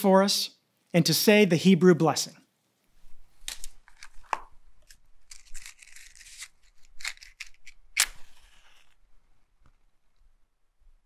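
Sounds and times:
match scratching and striking: 0:04.8 - 0:09.0.

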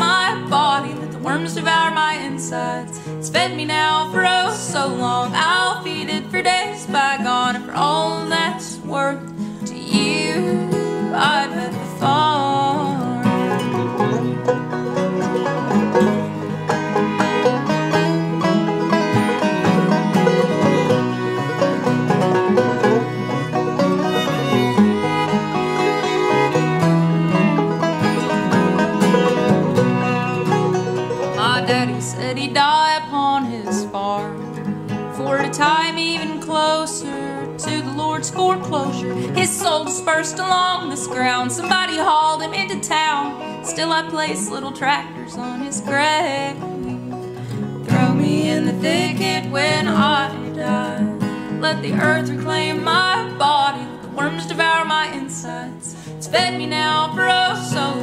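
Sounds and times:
person singing: 0:00.0 - 0:14.1, 0:22.7 - 0:26.7, 0:31.3 - 0:34.5, 0:35.1 - 0:46.8, 0:47.8 - 0:58.0
acoustic guitar: 0:00.0 - 0:58.0
banjo: 0:00.0 - 0:58.0
fiddle: 0:00.0 - 0:58.0.

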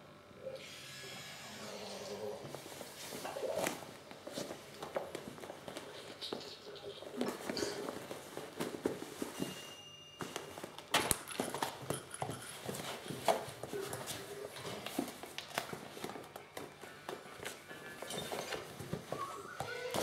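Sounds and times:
kittens scuffling on floor: 0:02.5 - 0:20.0.

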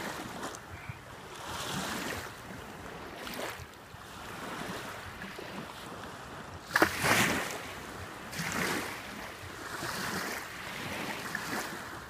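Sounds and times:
water lapping and sloshing: 0:00.0 - 0:12.0
water splash: 0:06.6 - 0:07.6.

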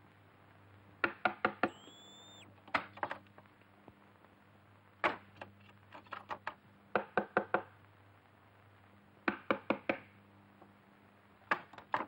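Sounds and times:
high whistling tone: 0:01.6 - 0:02.5.

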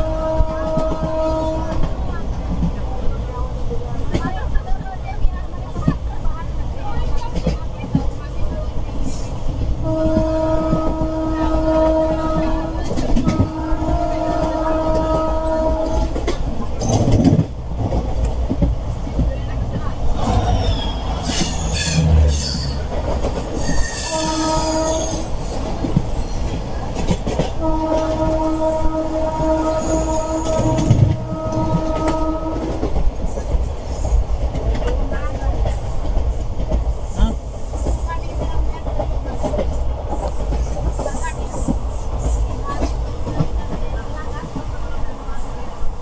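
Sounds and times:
locomotive horn blasts: 0:00.0 - 0:02.0, 0:09.8 - 0:16.3, 0:23.8 - 0:25.3, 0:27.6 - 0:32.9
passing train rush: 0:00.0 - 0:46.0
train coach rumbling: 0:00.0 - 0:46.0.

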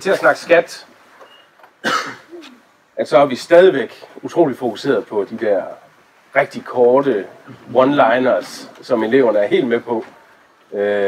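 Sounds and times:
speech: 0:00.0 - 0:00.9, 0:03.0 - 0:10.1, 0:10.7 - 0:11.0
short cough: 0:01.8 - 0:02.6.

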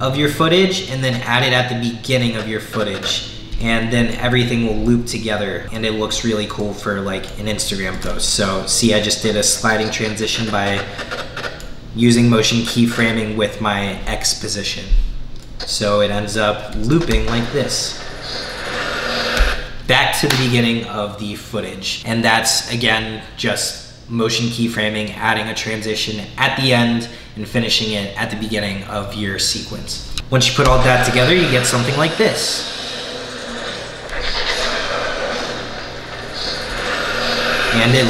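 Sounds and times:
ambient background bed: 0:00.0 - 0:38.0.

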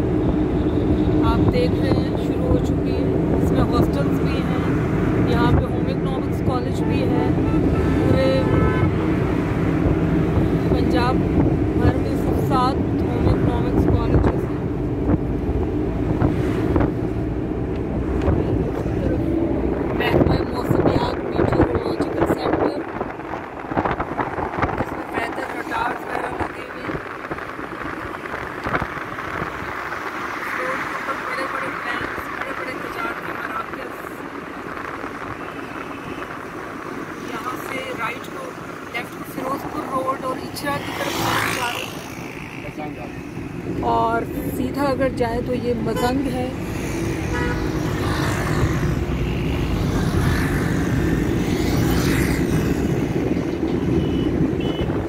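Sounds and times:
vehicle road and engine noise: 0:00.0 - 0:55.0
wind buffeting microphone: 0:00.0 - 0:55.0.

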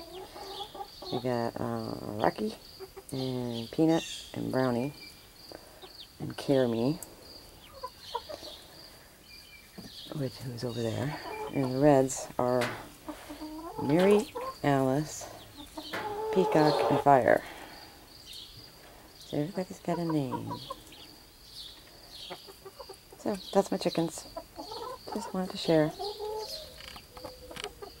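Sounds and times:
hens clucking: 0:00.0 - 0:04.9, 0:05.5 - 0:28.0
chickens calling softly: 0:00.0 - 0:28.0.

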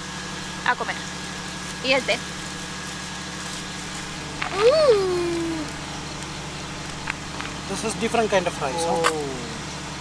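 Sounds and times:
generator humming: 0:00.0 - 0:10.0
drawn-out voiced call: 0:04.4 - 0:05.8.

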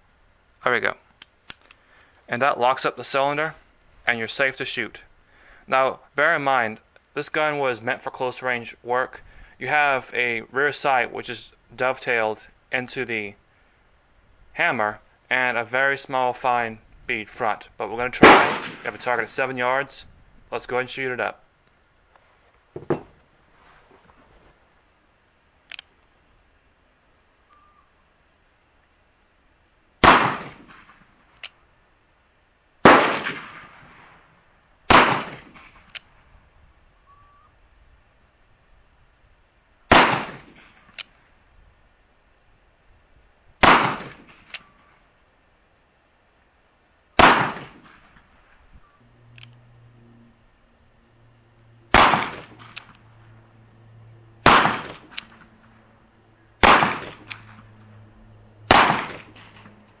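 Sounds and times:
low steady hum: 0:00.0 - 1:00.0
faint sharp click: 0:01.1 - 0:02.2, 0:25.7 - 0:26.0, 0:27.5 - 0:27.7, 0:49.3 - 0:49.6
revolver gunshots: 0:18.2 - 0:19.2, 0:30.0 - 0:31.1, 0:32.8 - 0:34.2, 0:34.9 - 0:35.9, 0:39.9 - 0:41.0, 0:43.6 - 0:44.8, 0:47.2 - 0:48.2, 0:51.9 - 0:52.9, 0:54.4 - 0:55.7, 0:56.6 - 0:57.7, 0:58.7 - 0:59.8.

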